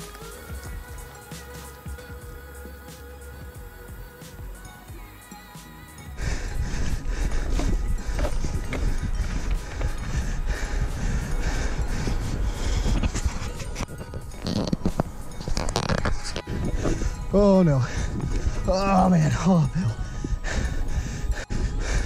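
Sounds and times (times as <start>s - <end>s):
background music: 0.0s - 22.0s
rumbling wind: 6.2s - 22.0s.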